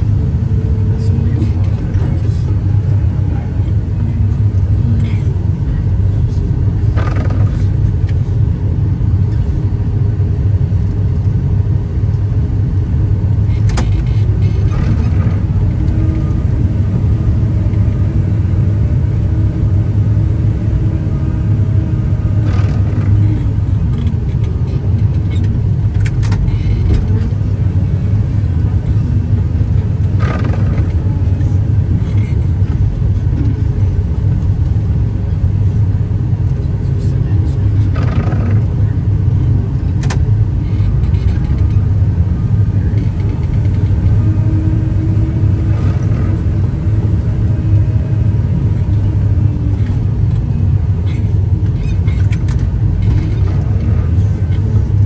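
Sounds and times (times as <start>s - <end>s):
diesel engine running under load: 0.0s - 55.0s.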